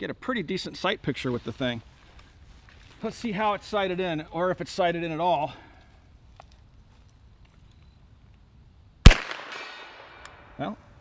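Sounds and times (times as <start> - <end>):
gunshot with echo: 9.1 - 10.2.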